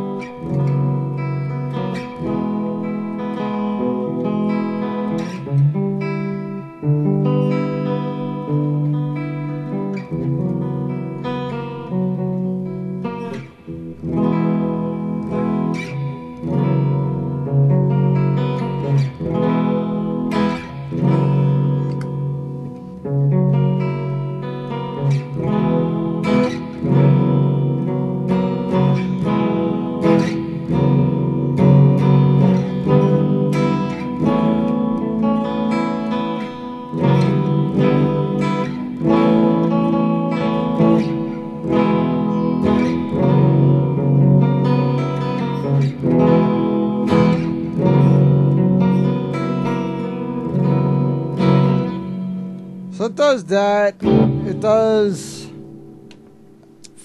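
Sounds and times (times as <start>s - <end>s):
clean electric guitar with chorus: 0.0s - 57.0s.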